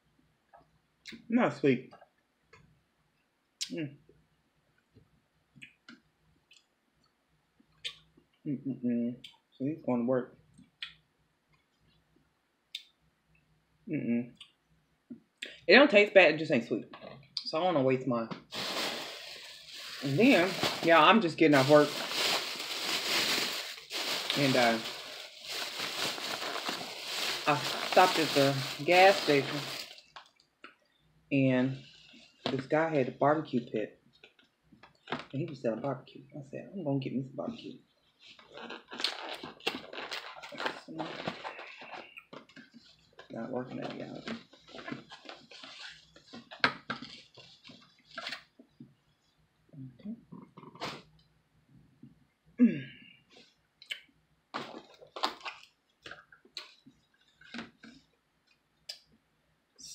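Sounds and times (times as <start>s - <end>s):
plastic bag rustling: 18.4s - 30.2s, 38.2s - 48.5s, 54.6s - 55.7s.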